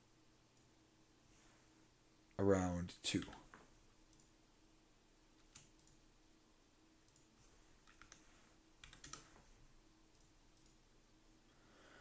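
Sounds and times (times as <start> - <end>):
computer keyboard and mouse clicks: 5.4 - 6.0, 7.1 - 9.4, 10.1 - 10.8.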